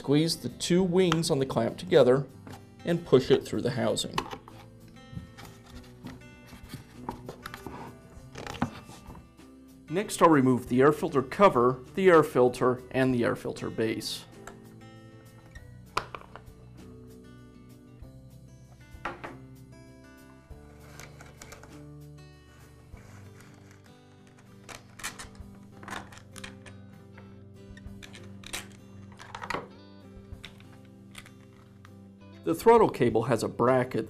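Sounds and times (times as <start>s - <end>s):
background music: 0.0s - 34.0s
plastic parts clicking: 23.6s - 26.8s, 28.0s - 29.7s.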